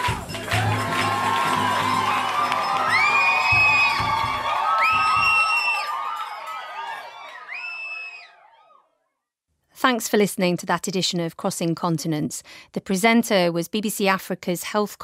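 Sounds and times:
crowd singing and cheering: 0:00.0 - 0:07.5
high rising whoops: 0:00.5 - 0:08.8.

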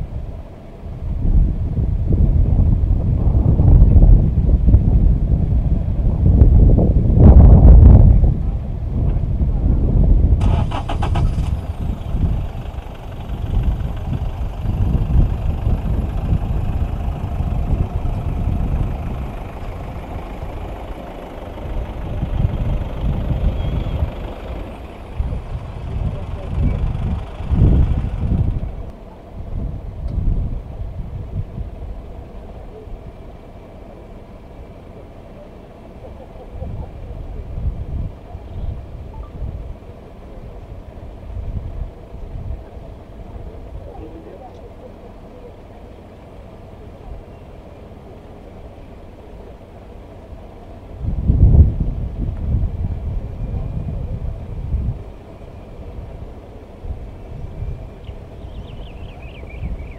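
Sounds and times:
wind on microphone: 0:00.0 - 0:32.1, 0:50.9 - 0:59.9
vehicle engine running: 0:00.0 - 0:59.9
background voices: 0:11.4 - 0:29.3.

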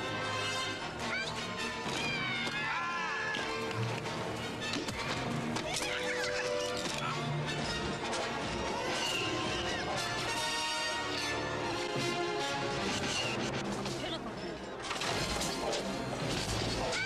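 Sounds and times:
film music: 0:00.0 - 0:17.0.

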